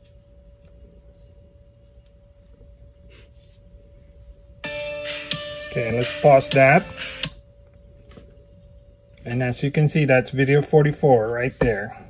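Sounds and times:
faint steady hum: 0.0 - 12.0
music from a tablet: 4.6 - 7.4.

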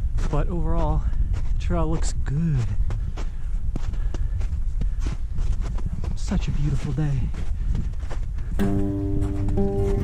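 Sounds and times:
boots crunching on snow: 0.0 - 10.0.

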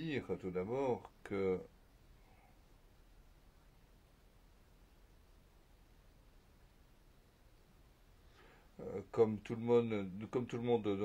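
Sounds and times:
person speaking: 0.0 - 1.7, 8.8 - 11.0
faint room hiss: 0.0 - 11.0.

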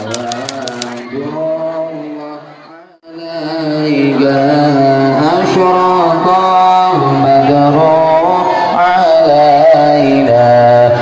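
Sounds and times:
typewriter key clicks: 0.0 - 1.0.

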